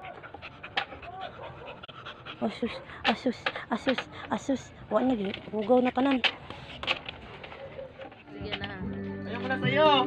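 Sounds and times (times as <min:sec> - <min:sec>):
small dog panting quickly: 0:00.0 - 0:03.3.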